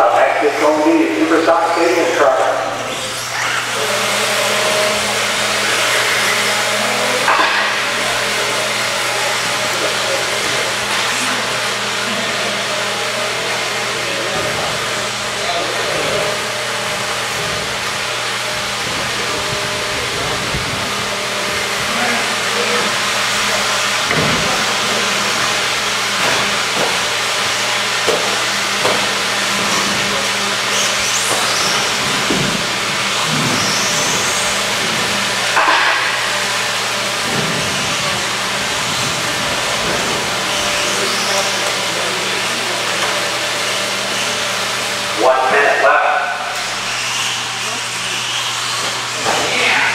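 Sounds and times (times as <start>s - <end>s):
rc car motors whirring: 2.7s - 49.9s.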